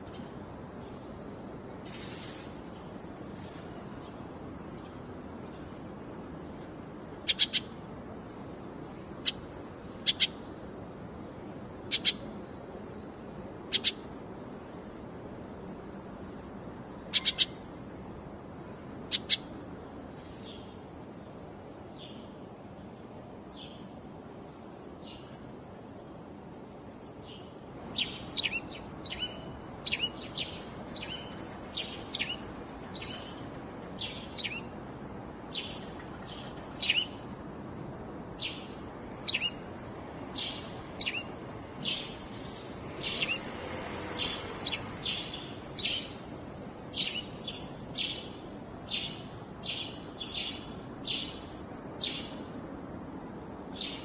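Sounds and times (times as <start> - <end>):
faint steady hiss: 0.0 - 54.0
bird chirping: 7.2 - 7.7, 10.0 - 10.4, 11.9 - 12.3, 13.7 - 14.0, 17.0 - 17.7, 19.0 - 19.5, 27.2 - 34.8, 35.5 - 37.2, 38.4 - 39.7, 40.3 - 43.5, 44.1 - 46.3, 46.9 - 52.5, 53.7 - 54.0.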